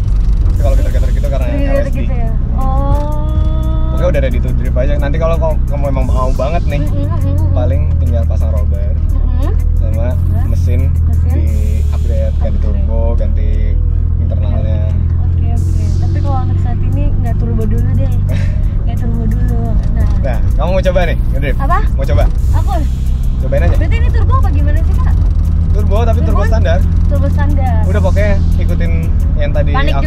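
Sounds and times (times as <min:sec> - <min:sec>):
background music: 0:00.0 - 0:30.0
car engine idling: 0:00.0 - 0:30.0
people talking: 0:00.6 - 0:30.0.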